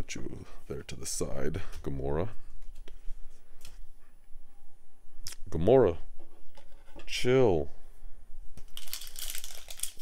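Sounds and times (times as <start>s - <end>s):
foil pack crinkling and tearing: 8.7s - 10.0s.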